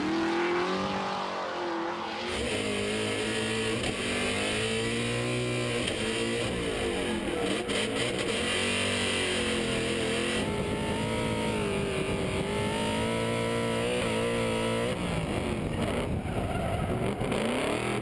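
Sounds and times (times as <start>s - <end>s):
car engine revving: 0.0s - 18.0s.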